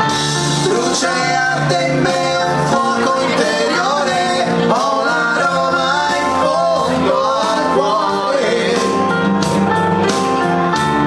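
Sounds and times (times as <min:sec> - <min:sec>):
amplified backing music: 0:00.0 - 0:11.0
men singing through microphones: 0:00.5 - 0:09.3.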